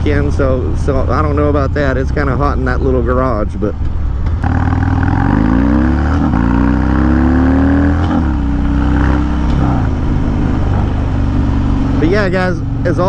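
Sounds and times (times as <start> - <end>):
motorcycle engine shifting gears: 3.8 - 13.0.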